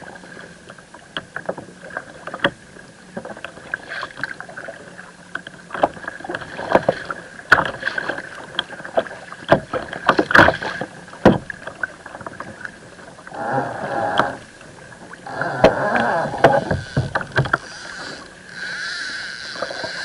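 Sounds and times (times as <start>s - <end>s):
water splashing against kayak hull: 0.0s - 20.0s.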